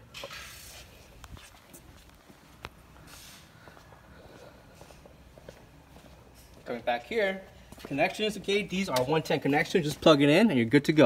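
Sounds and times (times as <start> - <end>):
soft rustles: 0.2 - 6.7.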